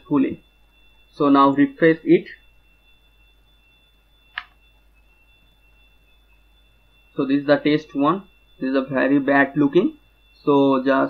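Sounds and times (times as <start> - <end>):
high-pitched electrical whine: 0.0 - 11.0
sharp click: 4.3 - 4.6.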